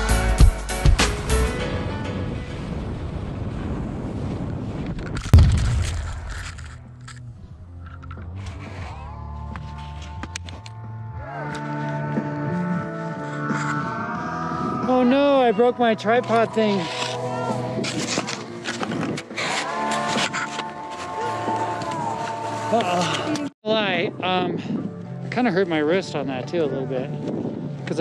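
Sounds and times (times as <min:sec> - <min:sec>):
wind on camera: 0:02.2 - 0:07.4
sliding and scraping on snow: 0:16.0 - 0:23.4.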